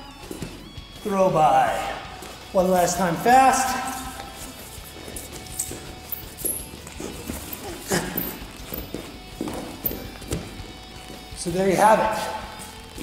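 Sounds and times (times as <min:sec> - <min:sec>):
quiet background music: 0:00.0 - 0:13.0
feet thudding on wrestling mat: 0:04.3 - 0:11.4.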